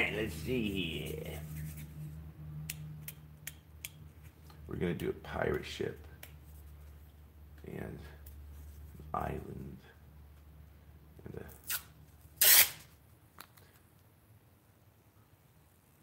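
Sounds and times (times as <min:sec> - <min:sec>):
tape ripping from roll: 0:11.5 - 0:13.0.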